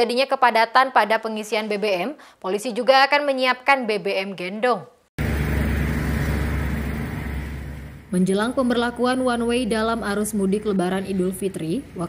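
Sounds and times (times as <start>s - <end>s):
vehicle engine running: 5.2s - 12.0s.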